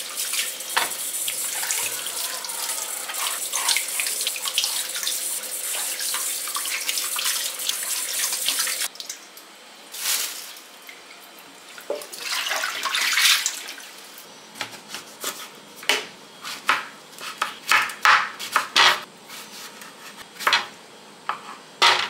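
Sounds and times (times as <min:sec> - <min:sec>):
splashing and rubbing in wet sink: 0:00.0 - 0:08.9.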